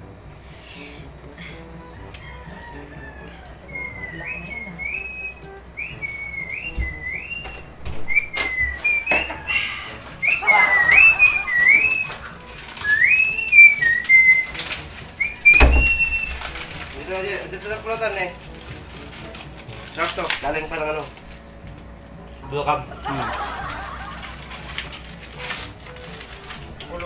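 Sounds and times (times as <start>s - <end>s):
person whistling a playful tune: 0.6s - 16.8s
knocks: 6.7s - 9.5s.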